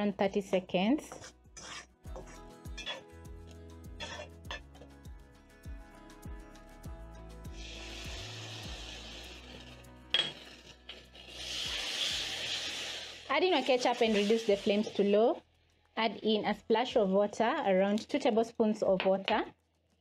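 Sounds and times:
background music: 0.0 - 19.4
wooden spoon scraping wok: 1.0 - 3.0, 4.0 - 4.6, 7.8 - 15.2
onions frying: 1.6 - 3.1, 7.5 - 15.3
sauce hissing in hot pan: 7.5 - 15.0.

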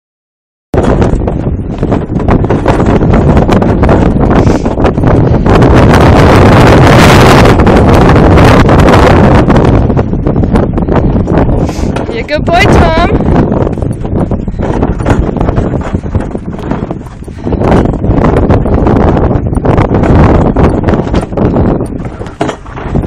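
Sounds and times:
strong wind buffeting microphone: 0.7 - 23.0.

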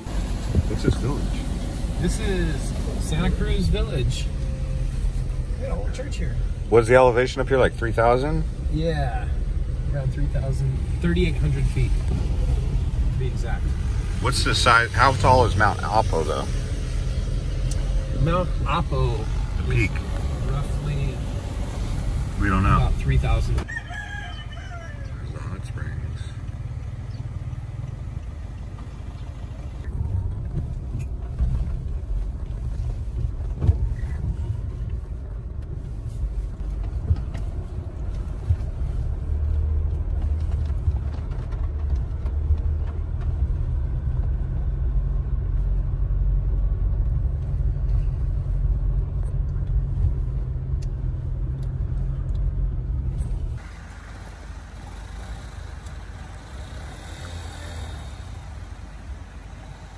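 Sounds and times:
car engine and tyres rumbling: 0.0 - 59.9
outdoor ambience: 0.0 - 59.9.

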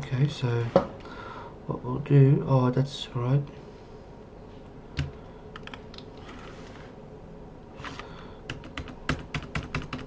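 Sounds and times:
computer keyboard keystrokes: 5.0 - 6.1, 8.5 - 10.0.

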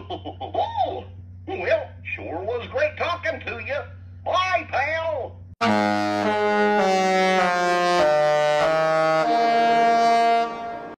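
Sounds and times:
ship horn playing chords: 5.6 - 10.9.

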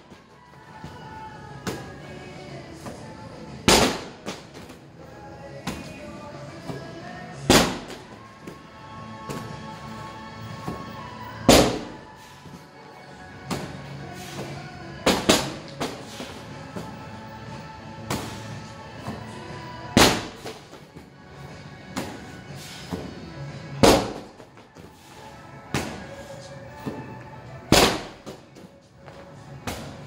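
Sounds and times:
background music: 0.0 - 30.0
medicine ball thuds: 2.8 - 4.8, 6.6 - 8.6, 10.5 - 12.1, 13.4 - 17.1, 18.0 - 21.0, 21.8 - 24.9, 25.6 - 26.2, 26.8 - 28.6.

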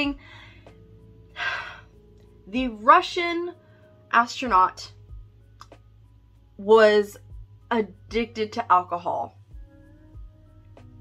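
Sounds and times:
woman breathing: 0.2 - 2.0.

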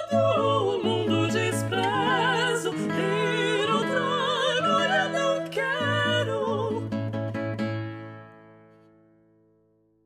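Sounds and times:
two women singing with vibrato: 0.0 - 7.3
classical guitar bass notes: 0.2 - 9.6.

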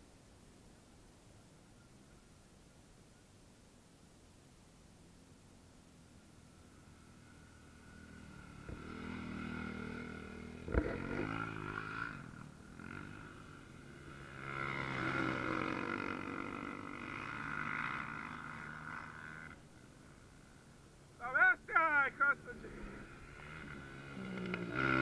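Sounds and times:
dirt bike engines passing: 4.3 - 25.0.

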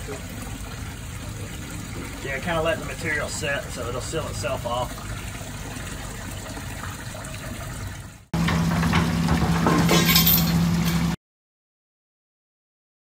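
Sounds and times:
water trickling into manhole: 0.0 - 11.2.

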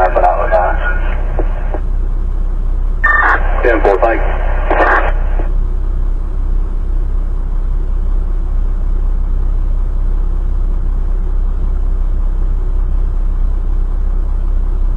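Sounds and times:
vehicle engine idling: 0.0 - 4.2, 5.5 - 14.9.

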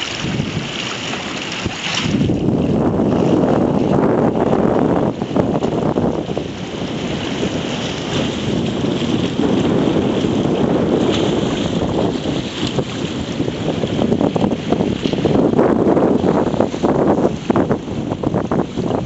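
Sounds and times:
waves splashing against rocks: 0.0 - 19.0
wind buffeting microphone: 0.0 - 19.0.

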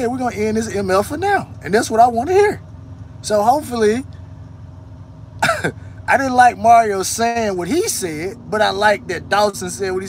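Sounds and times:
steady low hum: 0.0 - 10.0
man clearing throat: 5.4 - 5.9.

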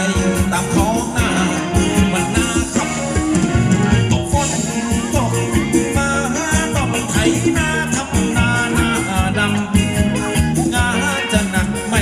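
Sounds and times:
live band dance music on loudspeakers: 0.0 - 12.0
person singing: 0.0 - 12.0.

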